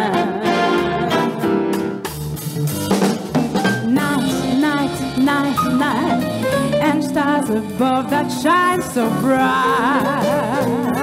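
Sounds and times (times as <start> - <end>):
jazz big band with strings: 0.0 - 11.0.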